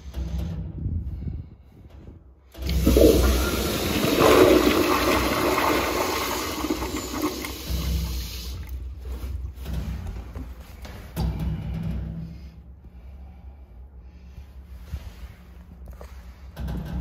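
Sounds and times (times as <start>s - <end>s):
toilet flushing: 2.6s - 8.9s.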